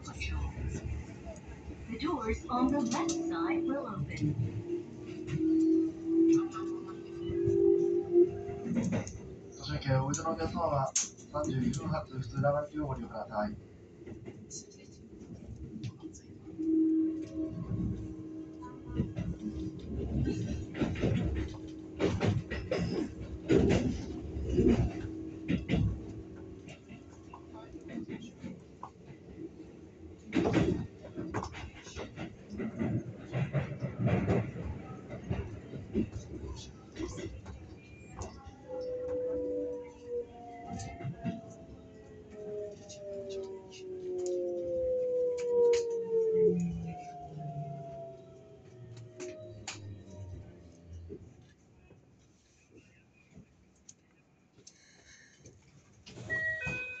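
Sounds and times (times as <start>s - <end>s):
indistinct voices: 0.0s - 13.6s
train running rumble: 0.0s - 52.1s
train clunks: 2.0s - 13.0s, 14.0s - 29.6s, 30.2s - 44.5s, 54.9s - 57.0s.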